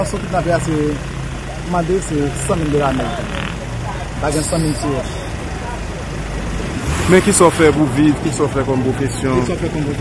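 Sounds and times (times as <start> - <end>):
low vehicle engine rumble: 0.0 - 10.0.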